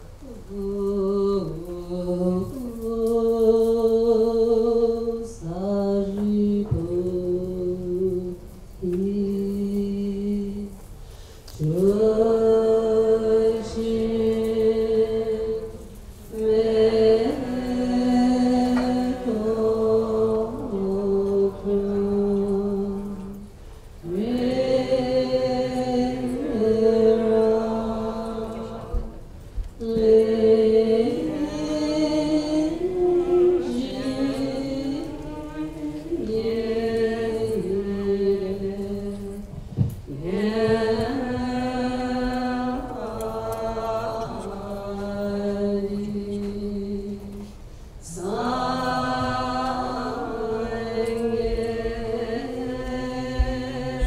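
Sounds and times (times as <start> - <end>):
mantra chanting low held note: 11.6 - 23.4, 24.0 - 29.2, 29.8 - 39.5.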